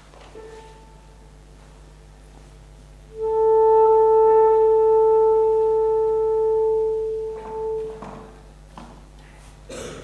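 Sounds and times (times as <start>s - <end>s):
alto saxophone long note: 3.1s - 8.6s.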